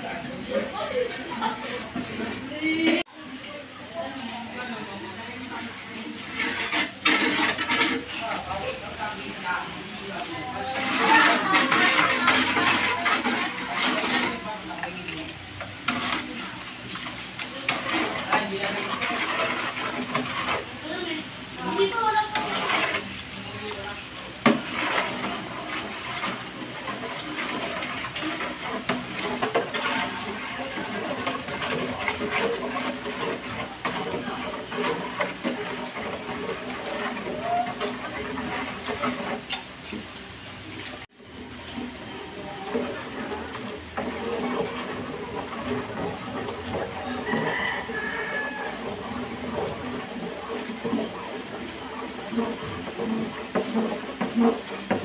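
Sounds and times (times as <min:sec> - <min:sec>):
liquid swishing: 0:00.0 - 0:03.1, 0:04.0 - 0:55.0
metal spoon clinking and scraping pot: 0:05.5 - 0:55.0.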